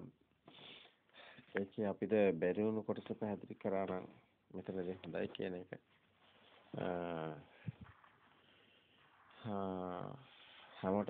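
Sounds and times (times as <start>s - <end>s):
person speaking: 1.4s - 11.0s.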